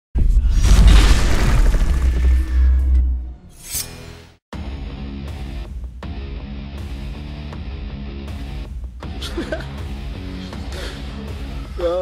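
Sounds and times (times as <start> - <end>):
deep rumbling boom: 0.2 - 3.6.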